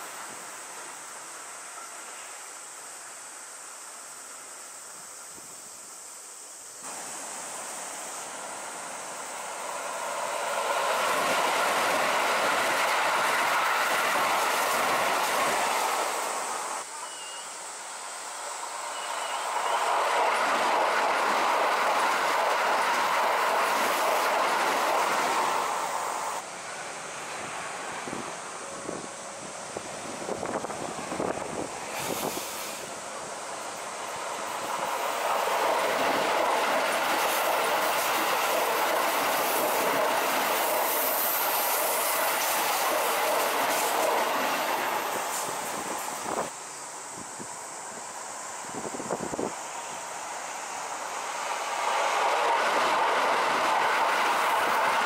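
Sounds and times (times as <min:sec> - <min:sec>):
electric trains passing: 0:00.0 - 0:55.0.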